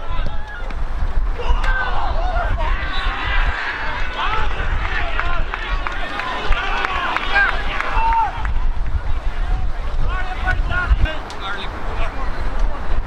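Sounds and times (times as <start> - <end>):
players shouting: 0.0 - 11.8
wind rumble on microphone: 0.0 - 13.0.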